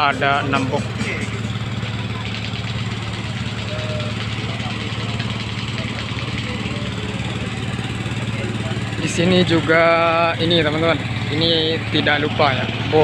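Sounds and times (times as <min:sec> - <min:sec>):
generator humming: 0:00.0 - 0:13.0.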